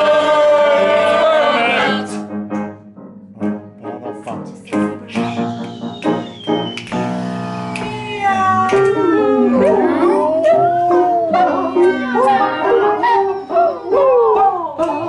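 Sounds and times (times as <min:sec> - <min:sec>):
person vocalising wordlessly: 0:08.3 - 0:15.0.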